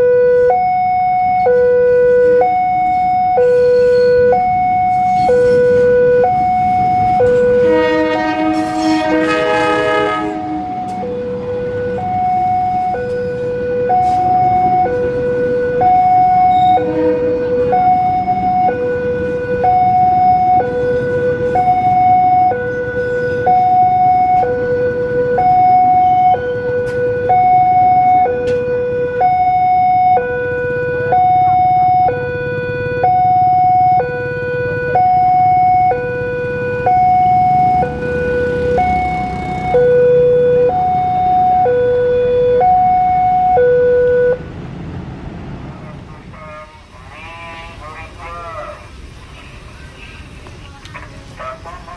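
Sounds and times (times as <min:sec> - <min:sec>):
level crossing two-tone alarm: 0:00.0 - 0:44.4
train rumbling past: 0:01.8 - 0:27.4, 0:36.3 - 0:41.5, 0:44.3 - 0:51.9.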